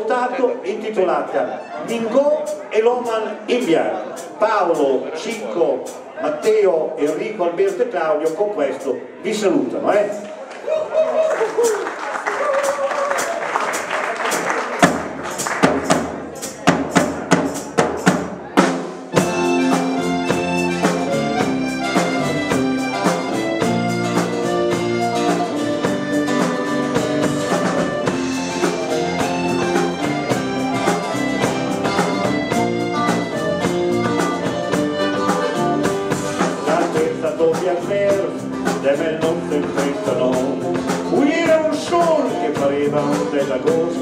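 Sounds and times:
live band playing: 0.0s - 44.0s
drum hits: 14.7s - 44.0s.

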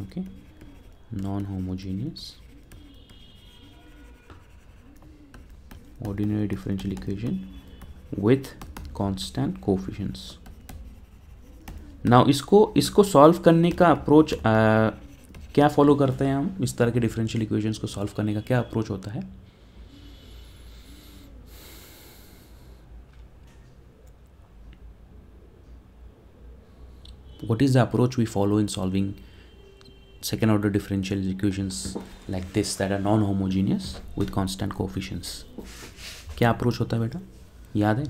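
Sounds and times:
stylus scratching on screen: 0.0s - 18.9s
stylus tapping on screen: 4.3s - 9.2s, 10.2s - 12.1s
person breathing through nose: 19.6s - 22.8s.

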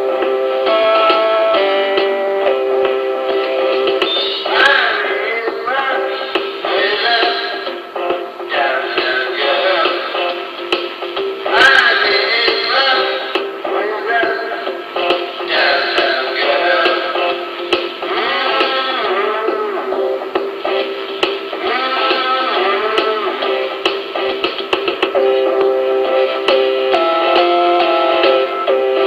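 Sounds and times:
rock song with singing: 0.0s - 29.0s.

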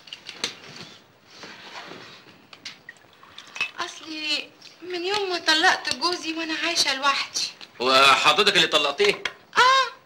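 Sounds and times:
woman speaking: 3.8s - 7.6s.

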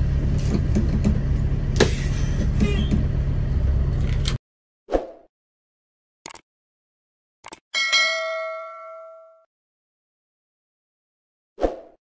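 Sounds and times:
bell ding: 7.8s - 9.5s.

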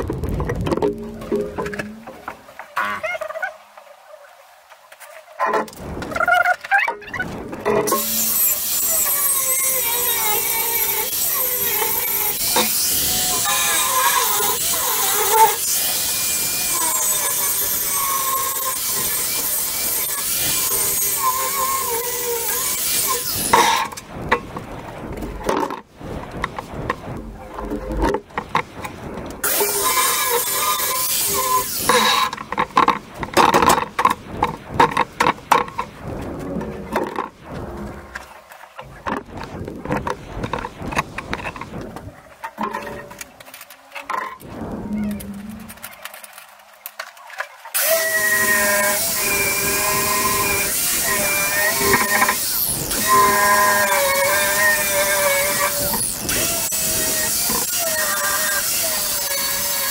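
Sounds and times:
angle grinder cutting steel: 7.8s - 24.0s, 29.4s - 34.2s, 47.8s - 59.9s.

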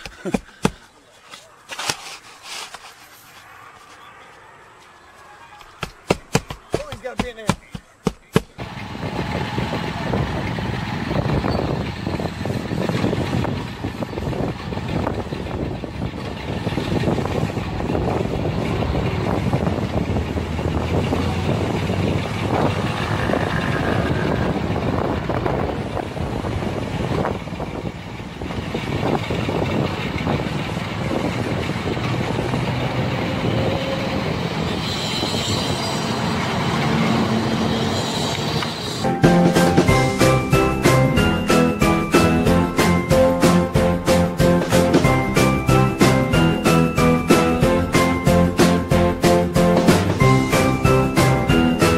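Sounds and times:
loud street noise: 0.0s - 51.9s.

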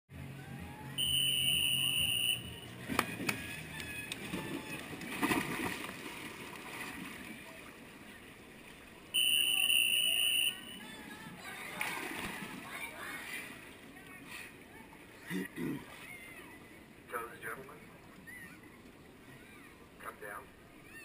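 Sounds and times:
referee whistle tones: 1.0s - 2.6s, 9.2s - 10.8s
swimmer splashing into pool: 4.2s - 7.4s.

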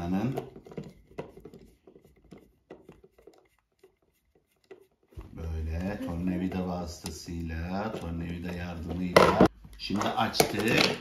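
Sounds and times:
screwdriver clicking and scraping: 0.6s - 5.2s.

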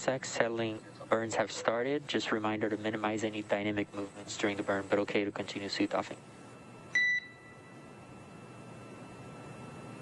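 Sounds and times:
short electronic beep: 7.0s - 7.6s.

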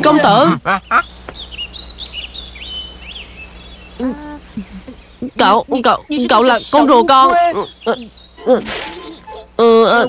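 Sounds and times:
birds chirping and whistling: 0.7s - 10.0s.

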